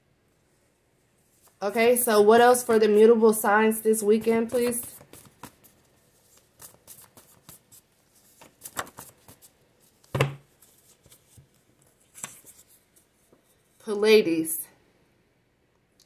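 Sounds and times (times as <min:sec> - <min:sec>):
paper cards rustling: 0:03.9 - 0:13.8.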